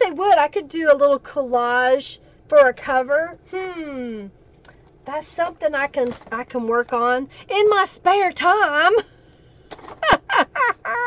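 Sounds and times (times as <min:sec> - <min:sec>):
woman laughing: 0:10.0 - 0:11.0.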